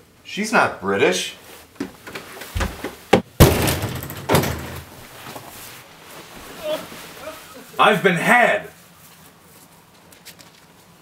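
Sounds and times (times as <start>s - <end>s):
interior door banging: 2.6s - 5.1s.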